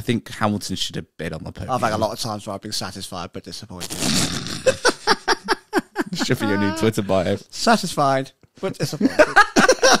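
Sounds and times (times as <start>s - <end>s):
men laughing: 4.6s - 7.2s, 9.0s - 10.0s.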